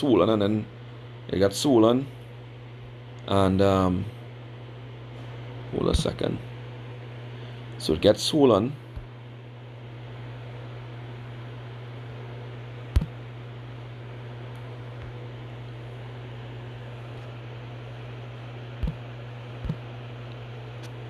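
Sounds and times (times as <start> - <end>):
low hum: 8.8 - 21.0.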